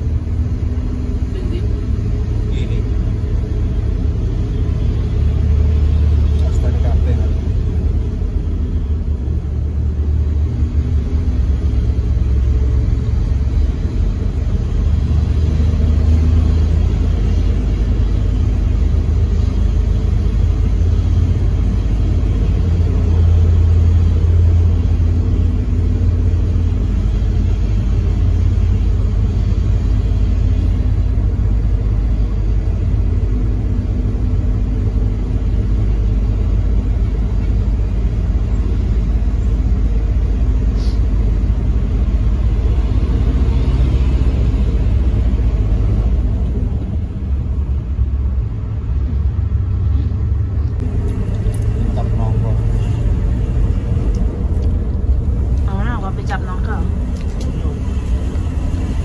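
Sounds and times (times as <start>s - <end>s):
bus engine and road rumble: 0.0s - 59.0s.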